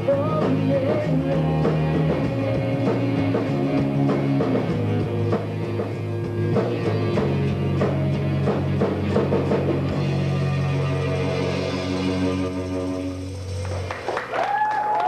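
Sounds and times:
held bass notes: 0.0s - 14.0s
electric guitar: 0.0s - 15.0s.

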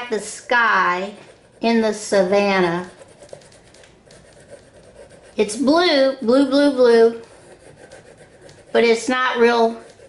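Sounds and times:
crayon scratching on paper: 0.0s - 10.0s.

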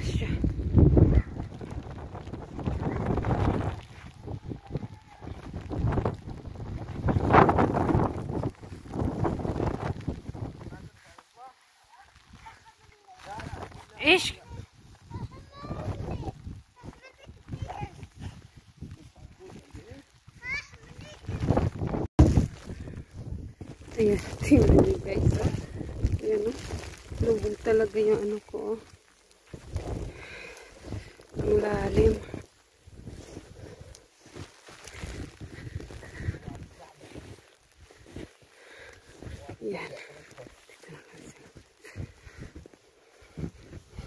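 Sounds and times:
wind buffeting microphone: 0.0s - 11.0s, 13.3s - 28.8s, 29.5s - 39.7s
footsteps in snow: 1.1s - 44.0s.

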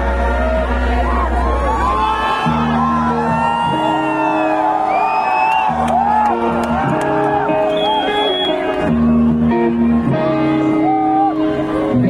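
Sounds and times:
crowd voices and whoops: 0.0s - 12.0s
live rock band through pa: 0.0s - 12.0s.

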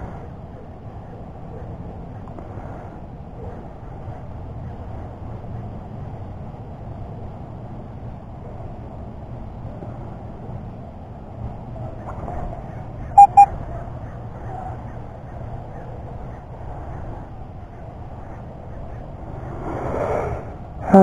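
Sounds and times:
metal detector beeps: 13.2s - 13.5s.

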